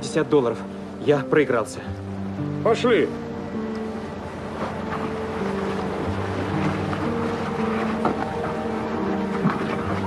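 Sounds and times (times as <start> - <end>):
music of long held notes: 0.0 - 10.0
motorboat engine running: 2.9 - 10.0
water churning: 3.3 - 10.0.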